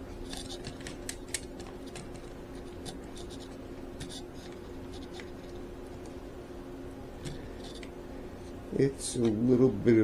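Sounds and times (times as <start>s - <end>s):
steady low hum: 0.0s - 10.0s
scratching and small clicks: 0.2s - 6.2s.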